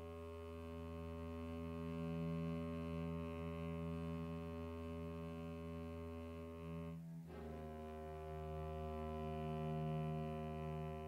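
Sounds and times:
sustained orchestral chord: 0:06.6 - 0:11.0.

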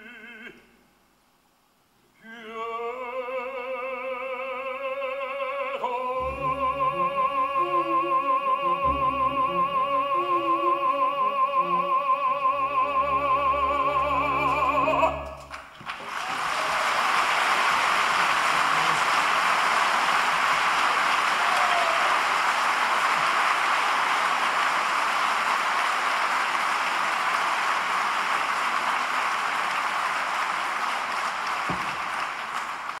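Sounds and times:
person singing: 0:00.0 - 0:00.7, 0:02.2 - 0:15.5
audience applause: 0:14.4 - 0:33.0.

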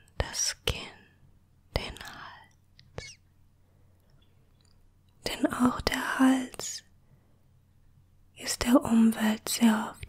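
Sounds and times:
soft wet clicks of fingertips: 0:04.0 - 0:05.2.

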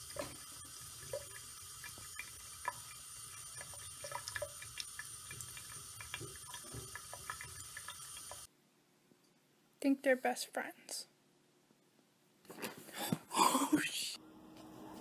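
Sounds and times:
tap water running into sink: 0:00.0 - 0:08.5
water drips ticking: 0:00.0 - 0:08.5.

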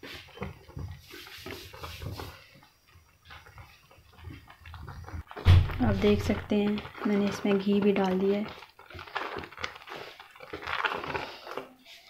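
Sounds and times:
milk bubbling: 0:00.0 - 0:12.0
spatula scraping a pot: 0:00.0 - 0:12.0
loud thump: 0:05.4 - 0:05.9.

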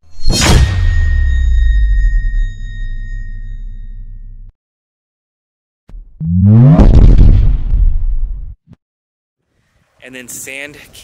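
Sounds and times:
thin high ringing tone: 0:00.0 - 0:04.5
deep low boom: 0:05.9 - 0:08.6.

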